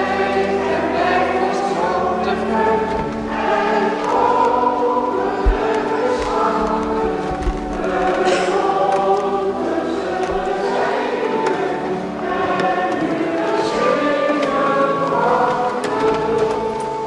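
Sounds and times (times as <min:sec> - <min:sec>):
choir singing a hymn: 0:00.0 - 0:17.0.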